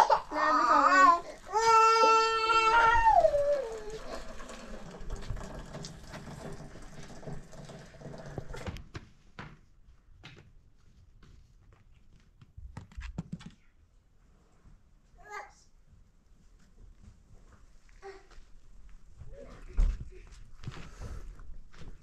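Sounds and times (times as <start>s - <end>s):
child whining cry: 0.0s - 4.2s
water pouring into teapot: 1.0s - 8.7s.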